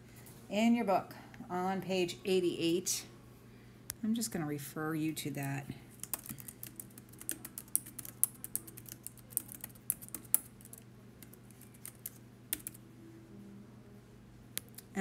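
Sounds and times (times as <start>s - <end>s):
typing on a keyboard: 6.0s - 12.8s.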